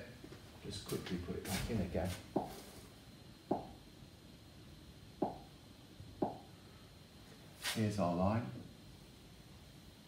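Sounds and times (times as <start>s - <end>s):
finger tapping touchscreen: 3.5s - 3.7s, 5.2s - 5.4s.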